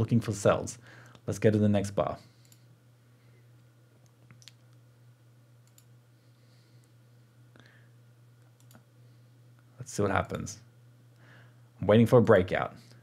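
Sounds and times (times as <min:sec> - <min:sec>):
low steady hum: 0:00.0 - 0:13.0
faint computer mouse clicks: 0:05.6 - 0:05.9, 0:08.5 - 0:08.8.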